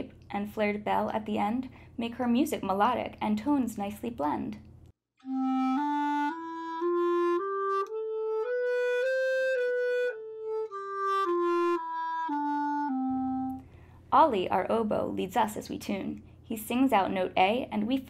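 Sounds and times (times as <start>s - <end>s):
clarinet playing a scale: 5.2s - 13.7s.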